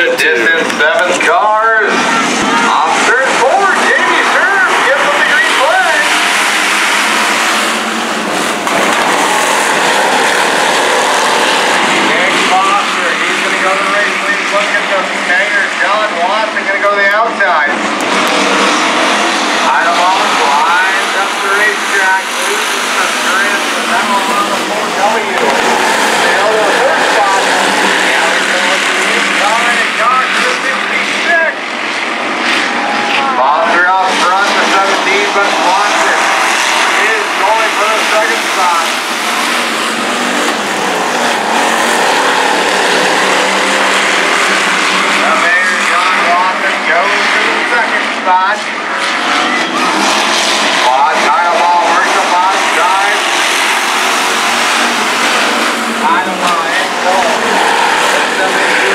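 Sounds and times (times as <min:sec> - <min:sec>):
announcer over loudspeaker: 0:00.0 - 0:08.2, 0:09.1 - 0:17.9, 0:19.0 - 0:58.9
race car engines revving: 0:00.0 - 0:58.9.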